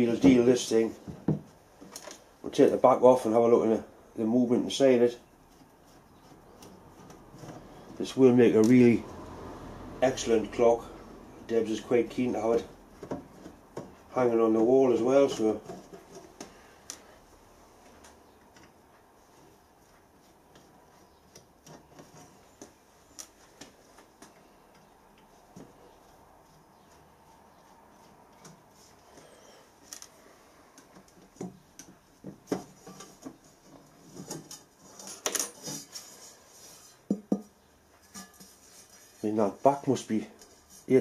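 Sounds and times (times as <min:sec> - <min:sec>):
metal scraping: 0:32.7 - 0:37.1, 0:38.0 - 0:41.0.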